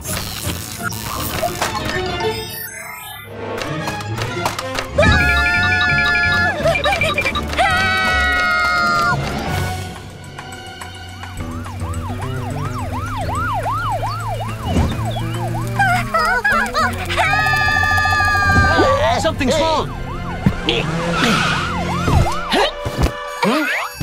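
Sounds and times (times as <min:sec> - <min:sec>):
cartoon characters screaming: 0:05.0 - 0:06.6, 0:07.6 - 0:09.2, 0:15.8 - 0:19.1
cartoon police siren wailing: 0:05.0 - 0:09.2, 0:11.3 - 0:22.6.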